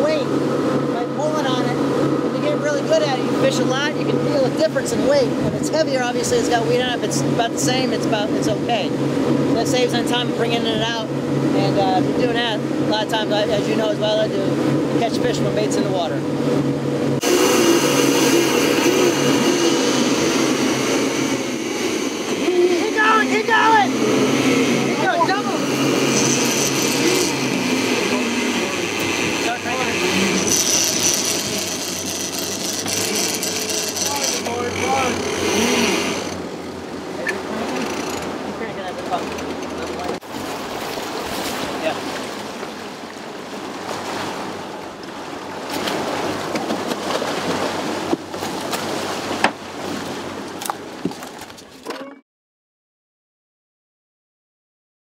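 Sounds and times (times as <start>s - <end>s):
rush of wake and wind: 0.0s - 52.0s
outboard motors humming: 0.0s - 52.2s
crew voices shouting: 22.4s - 27.5s.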